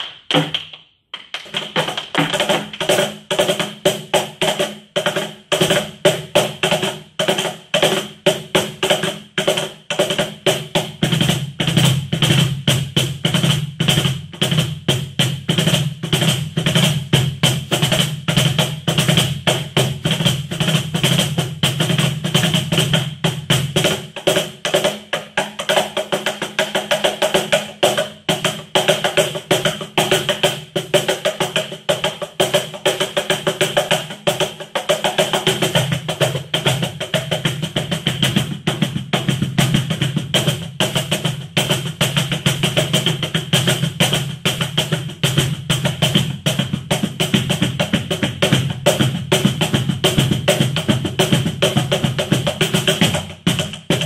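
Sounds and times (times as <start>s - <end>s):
cajon played with hands: 0.0s - 54.0s.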